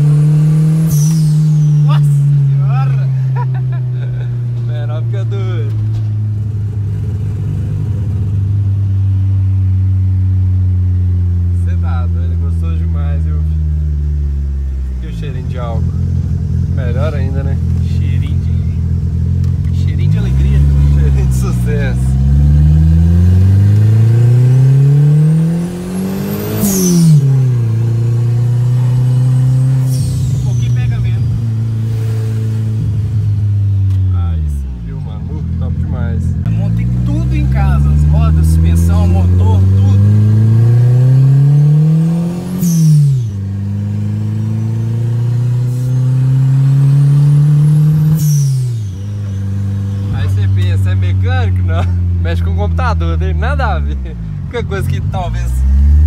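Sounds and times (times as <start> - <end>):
car engine accelerating: 0.0 - 56.0
turbo whistle: 0.8 - 2.0.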